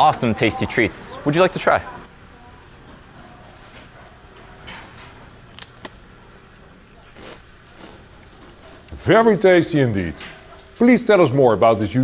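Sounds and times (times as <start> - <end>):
cookie cracking: 5.4 - 8.3
cookie crunching: 5.4 - 9.0.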